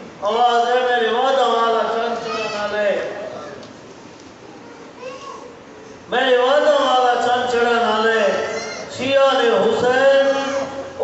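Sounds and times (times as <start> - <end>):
faint hall hum: 0.0 - 11.0.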